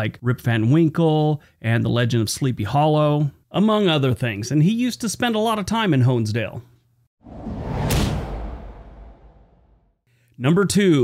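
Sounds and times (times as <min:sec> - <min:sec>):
whoosh rushing noise: 0:07.2 - 0:09.8
sharp hit: 0:07.2 - 0:09.9.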